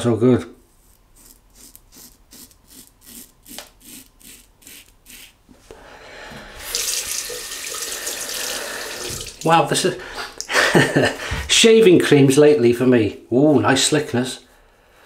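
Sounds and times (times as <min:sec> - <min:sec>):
razor scraping stubble: 0:00.8 - 0:05.5
tap running into basin: 0:06.3 - 0:09.6.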